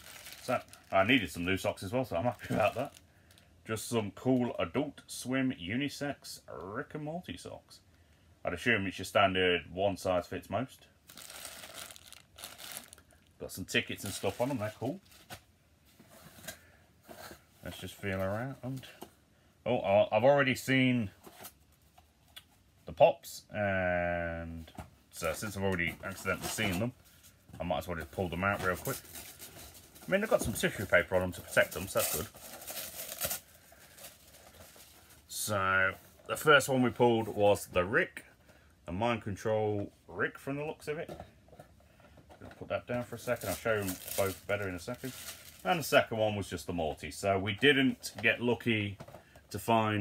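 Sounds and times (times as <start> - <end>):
tissue paper rustling: 0.0 - 1.3, 11.1 - 13.0, 13.9 - 15.4, 43.2 - 46.0
plastic packaging crinkling: 0.0 - 1.6, 2.2 - 3.4, 11.1 - 15.4, 28.4 - 35.2, 43.0 - 46.1
faint handling sounds: 0.0 - 4.6, 11.0 - 22.9, 24.5 - 50.0.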